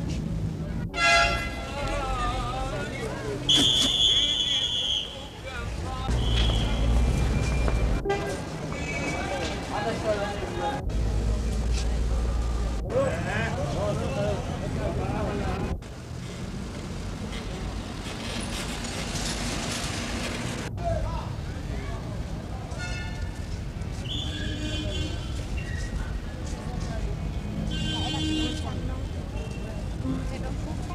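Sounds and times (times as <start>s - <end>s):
people's voices: 0.0s - 15.8s, 20.7s - 30.9s
traffic: 0.0s - 30.9s.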